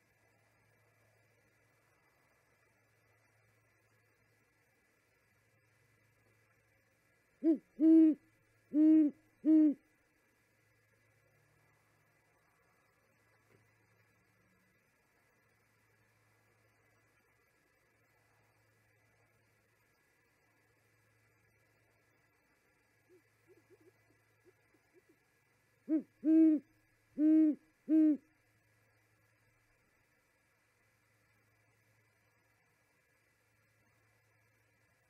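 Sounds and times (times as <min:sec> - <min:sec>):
owl hooting: 0:07.4 - 0:09.8, 0:23.0 - 0:28.3.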